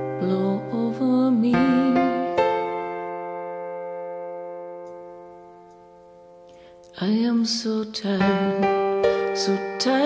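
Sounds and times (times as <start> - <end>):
held keyboard chord: 0.0 - 7.2, 8.0 - 10.0.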